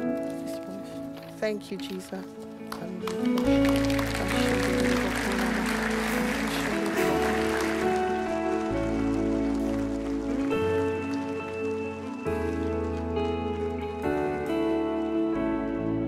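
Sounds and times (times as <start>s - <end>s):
sustained keyboard chords: 0.0s - 16.0s.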